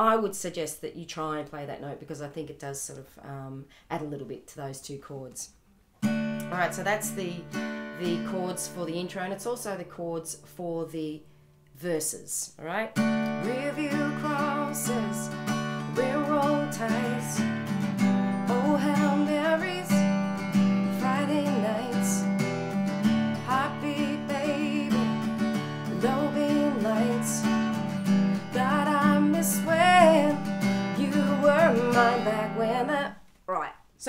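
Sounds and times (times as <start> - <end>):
acoustic guitar strumming: 6.0 - 10.5, 12.9 - 33.2
woman singing: 6.4 - 9.4, 13.2 - 17.6, 18.3 - 20.2, 20.8 - 22.4, 23.3 - 27.8, 28.4 - 33.2.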